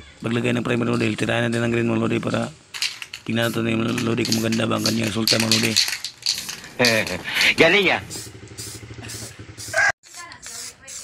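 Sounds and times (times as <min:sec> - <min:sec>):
person speaking: 0:00.2 - 0:08.2
spray can hissing: 0:02.7 - 0:11.0
small engine idling: 0:06.6 - 0:09.8.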